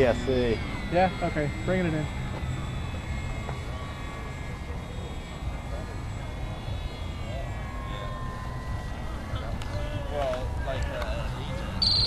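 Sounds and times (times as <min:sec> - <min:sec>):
distant model airplane motor whining: 0:00.0 - 0:12.0.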